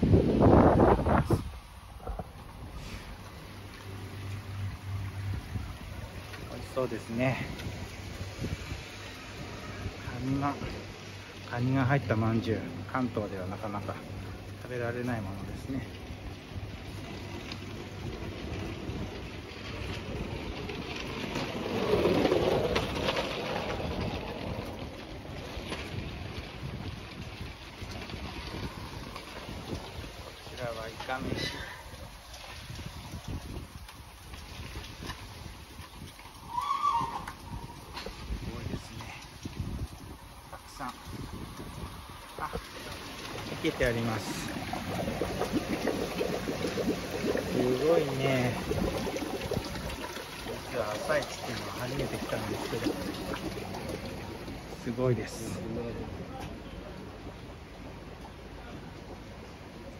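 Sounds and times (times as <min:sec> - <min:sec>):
wind on microphone: 0:00.0 - 0:03.3, 0:04.6 - 0:10.9, 0:16.4 - 0:56.1
water pouring from a hose: 0:00.0 - 0:56.2
bubbling chirps: 0:36.4 - 0:37.9, 0:42.2 - 0:55.6.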